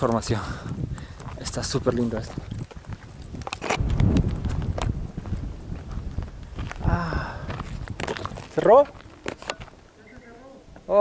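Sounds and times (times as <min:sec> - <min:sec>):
quick footsteps on dirt path: 0:00.0 - 0:09.9.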